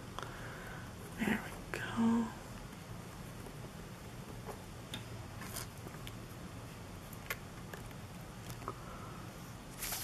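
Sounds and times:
low steady hum: 0.0 - 10.0
paper rustle: 9.7 - 10.0.

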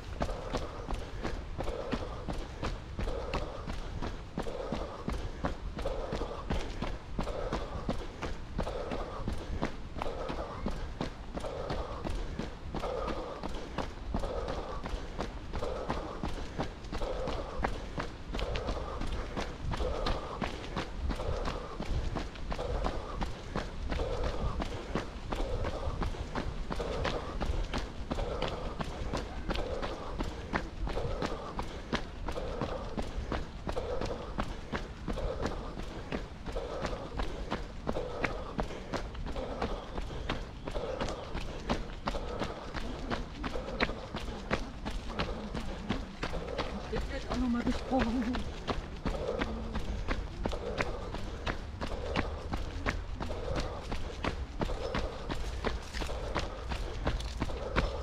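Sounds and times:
footsteps on dirt path: 0.0 - 58.0
heavy rhythmic breathing: 0.0 - 58.0.

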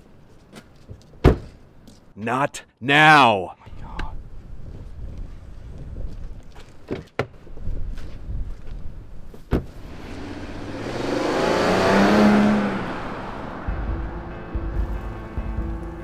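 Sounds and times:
car driving past: 9.8 - 15.9
background music with steady tones: 12.6 - 16.0.

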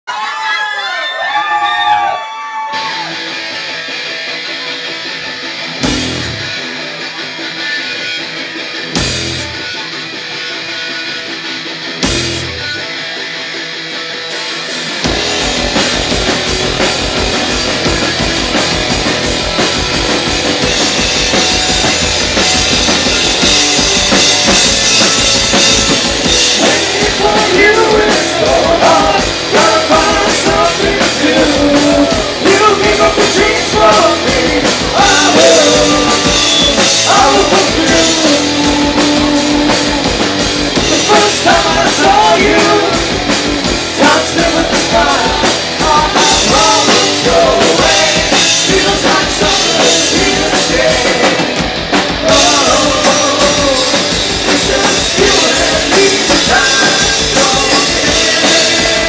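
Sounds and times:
metal band playing fast: 0.1 - 59.0
heavy drum and cymbal hits: 5.8 - 6.6, 8.9 - 9.7, 12.0 - 59.0
singer's voice: 26.3 - 59.0.

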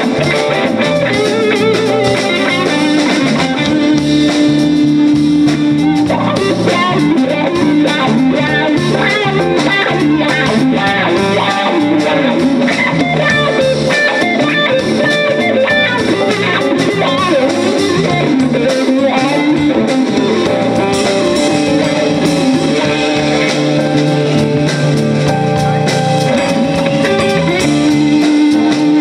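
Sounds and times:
bass guitar: 0.0 - 29.0
drum kit: 0.0 - 29.0
electric guitar lead lines: 0.0 - 29.0.

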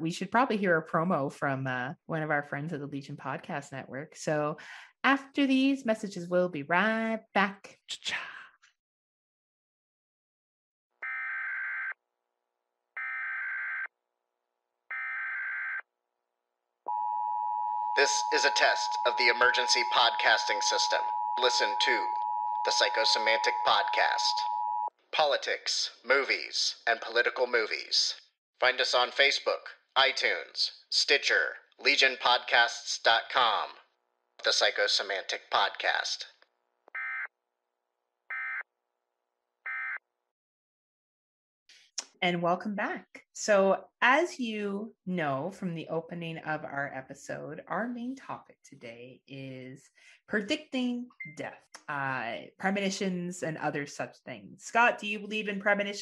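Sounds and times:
two-tone attention signal: 16.9 - 24.9.

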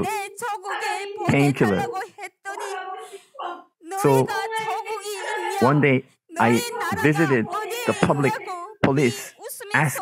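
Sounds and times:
woman's wavering voice: 0.0 - 10.0.

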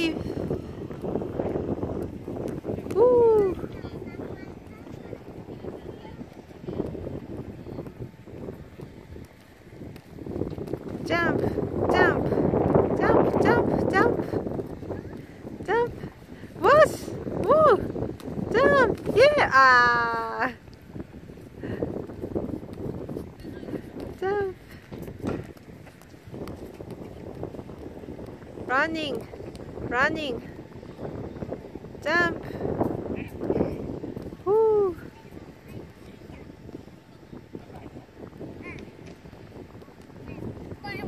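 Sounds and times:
wind rumbling on microphone: 0.0 - 41.0
bare feet thudding on vinyl: 22.1 - 28.4.

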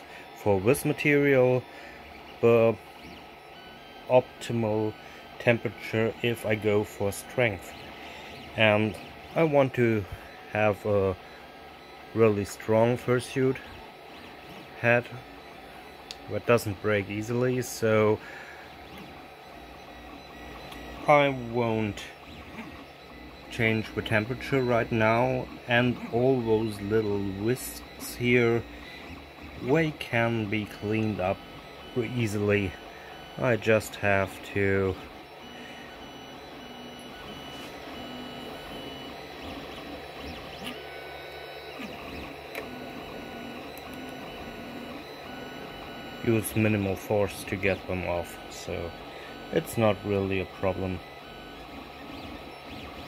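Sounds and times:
faint whining tones: 0.0 - 53.0.

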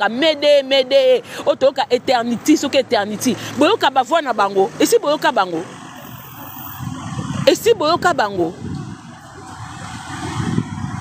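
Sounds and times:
car passing by: 5.7 - 11.0.

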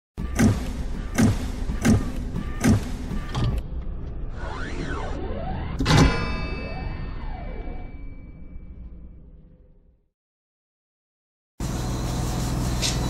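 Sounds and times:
heavy mechanical thuds: 0.2 - 3.6
loud hit with ringing tail: 5.8 - 8.6.

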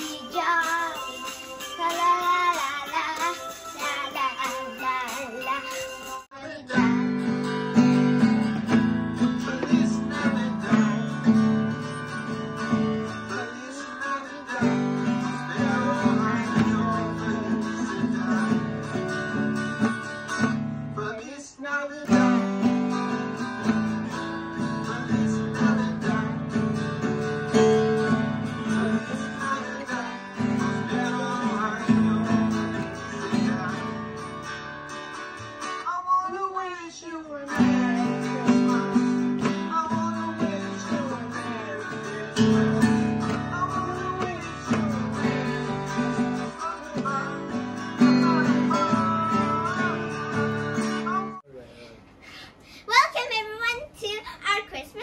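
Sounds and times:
acoustic guitar strumming: 0.0 - 51.5.

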